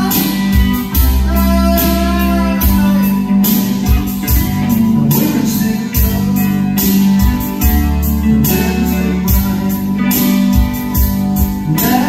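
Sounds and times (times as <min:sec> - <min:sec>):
electric guitar: 0:00.0 - 0:12.0
keyboard: 0:00.0 - 0:12.0.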